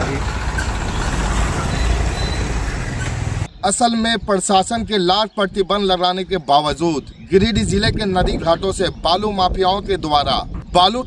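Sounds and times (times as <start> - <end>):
tractor engine rumble: 0.0 - 3.5.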